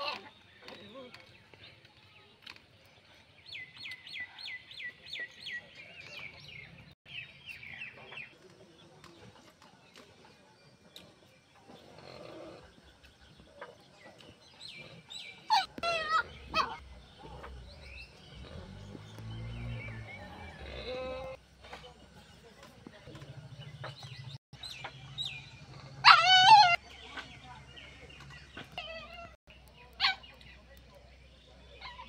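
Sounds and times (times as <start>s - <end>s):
farm animal calls: 14.6s - 21.4s, 24.9s - 30.6s.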